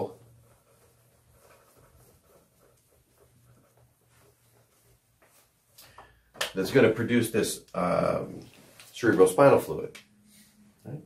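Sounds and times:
eraser wiping a whiteboard: 0.0 - 5.8.

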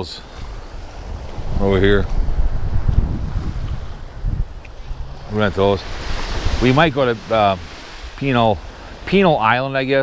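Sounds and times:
wind buffeting microphone: 0.0 - 9.5.

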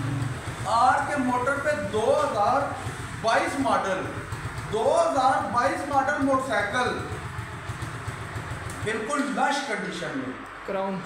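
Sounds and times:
motorcycle engine idling: 0.0 - 10.2.

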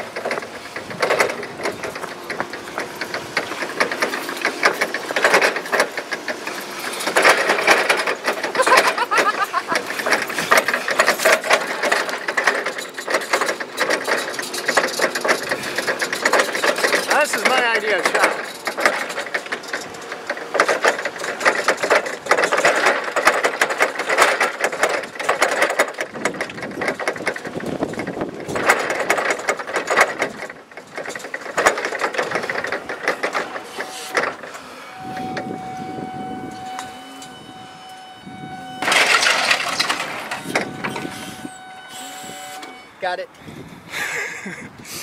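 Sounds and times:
forklift forks rattling: 0.0 - 43.3
forklift whine: 0.0 - 45.0.

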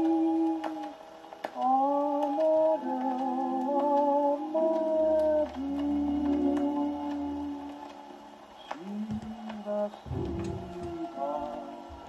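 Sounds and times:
gramophone record music: 0.0 - 12.0
record surface ticks: 0.0 - 12.0.

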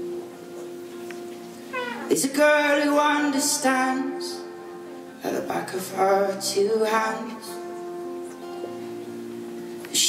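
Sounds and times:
person singing: 1.9 - 8.5.

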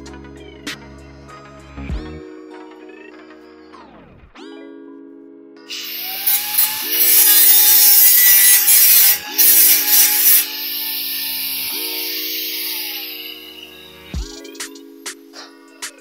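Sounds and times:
power tool grinding metal: 5.7 - 14.1.

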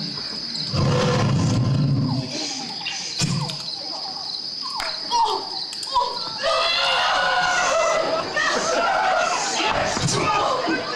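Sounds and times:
crickets chirring: 0.0 - 10.9.

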